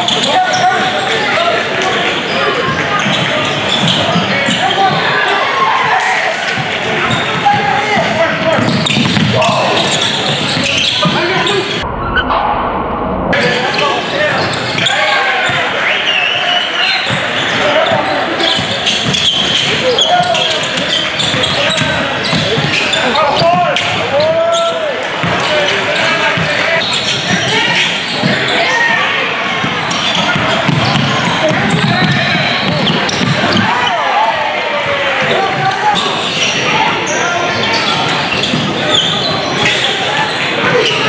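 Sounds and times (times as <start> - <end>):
voices echoing in gym: 0.0 - 41.0.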